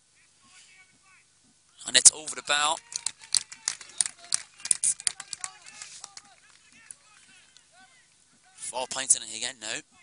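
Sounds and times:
distant shouts: 1.9 - 9.0
handclaps: 2.3 - 7.6.

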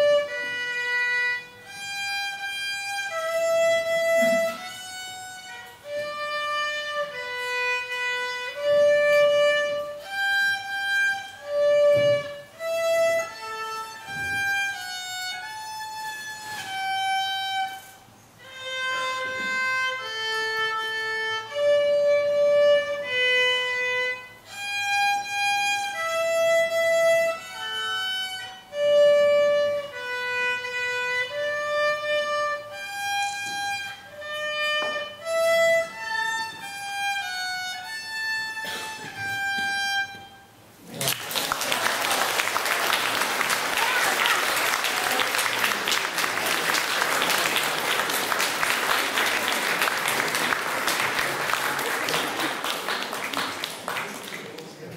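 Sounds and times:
child playing violin: 0.0 - 40.7
audience applause: 40.9 - 54.9.

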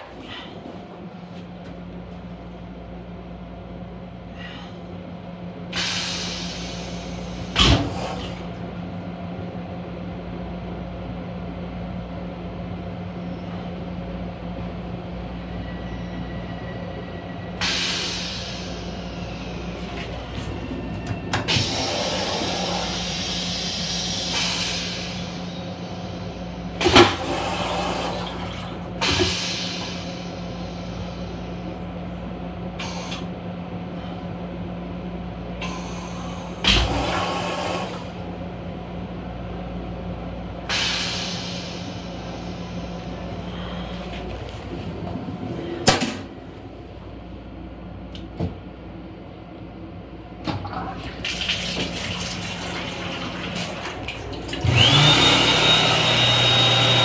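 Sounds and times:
train interior hum: 0.0 - 55.0
low rumble: 42.4 - 50.2.

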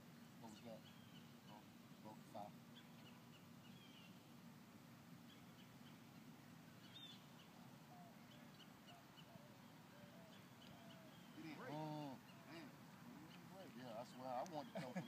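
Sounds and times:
faint bird chirps: 0.1 - 4.3, 5.2 - 15.0.

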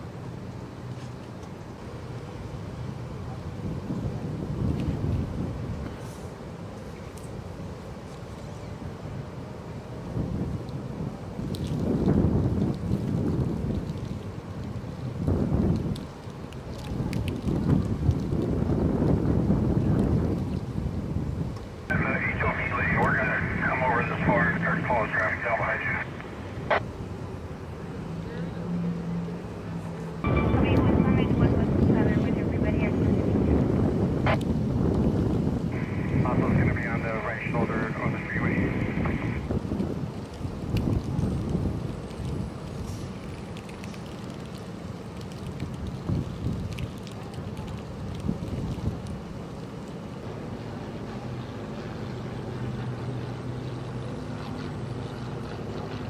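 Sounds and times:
wind buffeting microphone: 3.2 - 6.0, 10.0 - 26.8, 30.2 - 43.8, 45.4 - 49.5.

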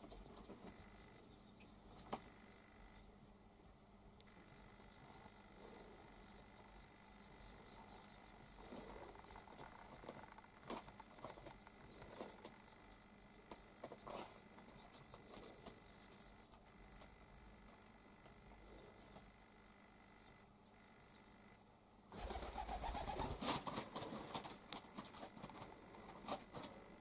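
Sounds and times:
pigeon cooing: 4.3 - 12.9, 22.2 - 24.3
rustling and clicking: 8.5 - 12.8, 23.1 - 27.0.

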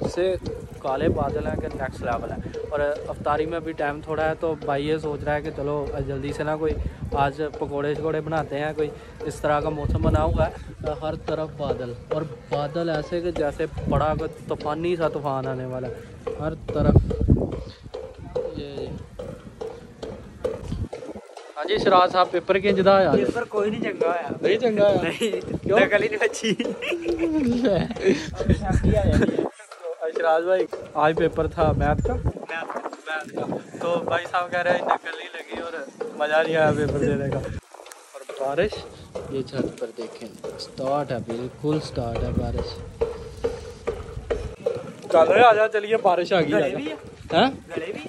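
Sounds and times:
gusty wind buffeting microphone: 0.0 - 48.0
rain pattering: 0.0 - 48.0.

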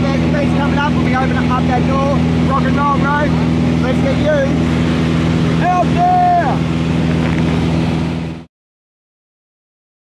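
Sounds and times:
light aircraft engine drone: 0.0 - 8.5
wind noise: 4.5 - 8.3.

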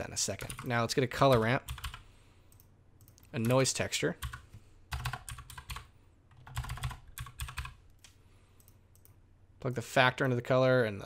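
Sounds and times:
typing on computer keyboard: 0.4 - 0.7, 1.3 - 2.0, 4.2 - 7.8.

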